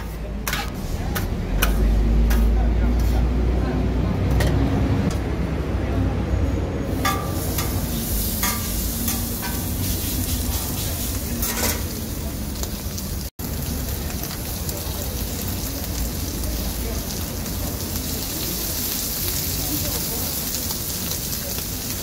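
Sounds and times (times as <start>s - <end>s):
metal spatula scraping a griddle: 0.0s - 3.3s, 6.9s - 12.0s
meat sizzling on a griddle: 6.9s - 22.0s.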